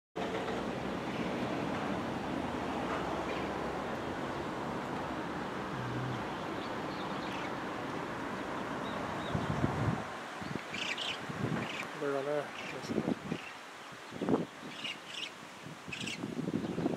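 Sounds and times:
wind buffeting microphone: 8.8s - 11.9s, 12.7s - 14.9s, 15.6s - 16.9s.

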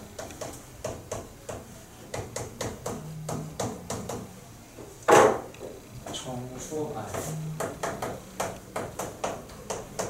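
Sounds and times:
chalk tapping on chalkboard: 0.2s - 4.3s, 7.0s - 10.0s.

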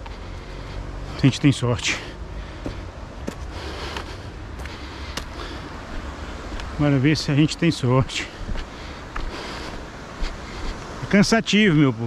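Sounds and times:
footsteps on dirt and stones: 0.0s - 11.8s.

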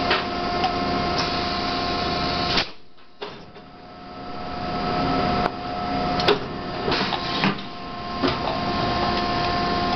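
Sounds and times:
machine humming: 0.3s - 9.9s.

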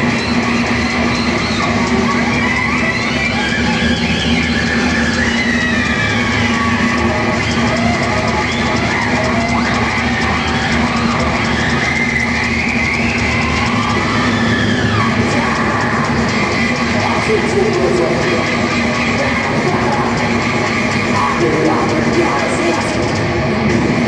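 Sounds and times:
distorted electric guitar lead: 0.0s - 24.0s.

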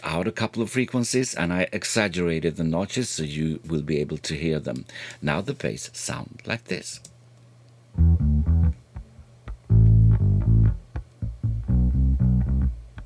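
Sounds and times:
solo bass line: 8.0s - 13.0s.

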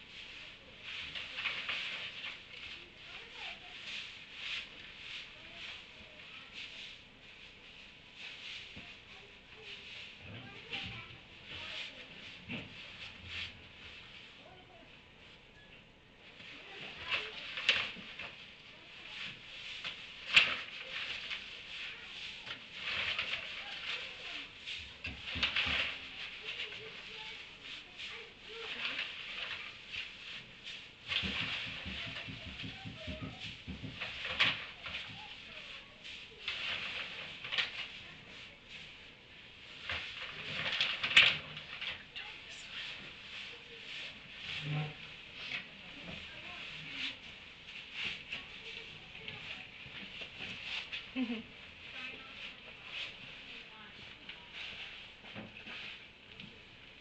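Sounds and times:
donkeys chewing hay: 0.0s - 15.2s, 16.2s - 57.0s.

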